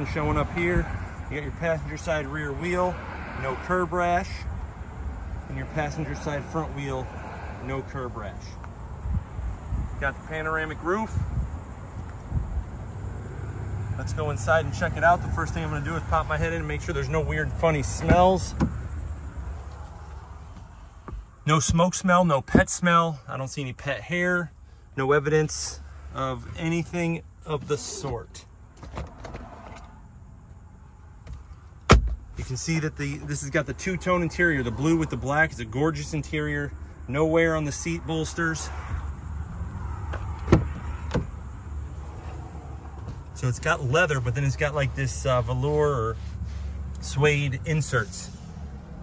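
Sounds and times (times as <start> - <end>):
car door clicks and knocks: 18.0 - 18.8, 31.2 - 32.4, 40.1 - 41.4.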